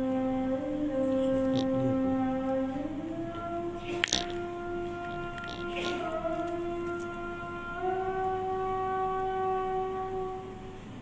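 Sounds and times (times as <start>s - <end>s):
person chanting call to prayer: 0.0s - 10.5s.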